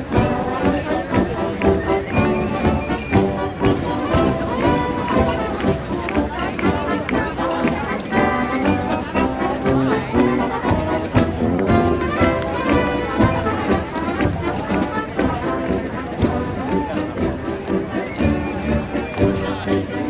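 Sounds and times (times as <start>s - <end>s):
brass band playing: 0.0s - 20.0s.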